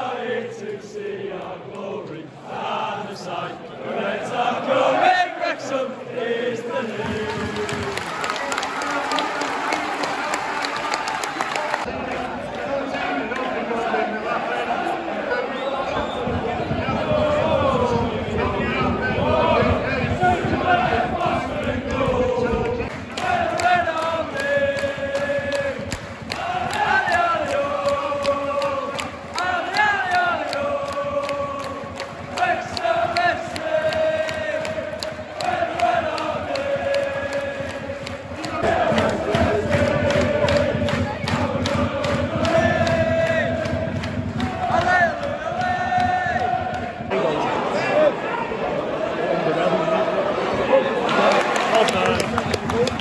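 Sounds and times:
crowd singing a chant: 0.0 - 53.0.

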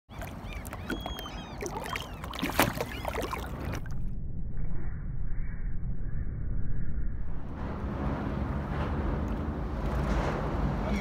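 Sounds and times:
waves lapping and splashing: 0.1 - 3.9, 7.6 - 11.0.

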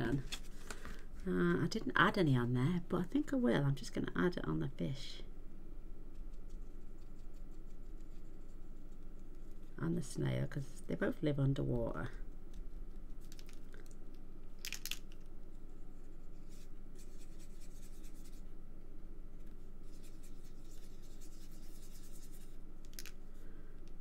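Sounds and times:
low room hum: 0.0 - 24.0.

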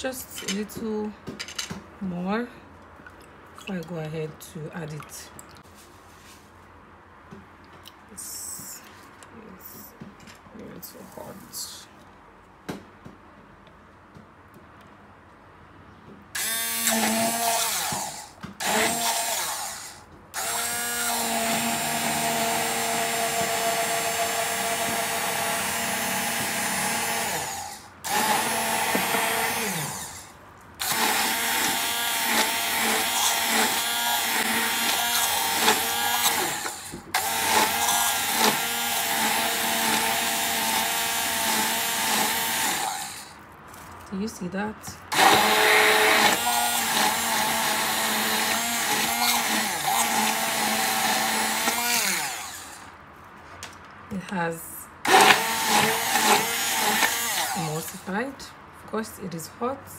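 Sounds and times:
immersion blender whining: 16.4 - 30.2, 30.8 - 43.3, 45.1 - 52.8, 55.0 - 57.9.

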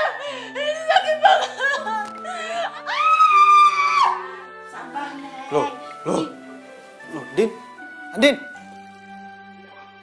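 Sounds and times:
soft background music: 0.0 - 10.0
woman screaming in pain: 2.6 - 4.4.

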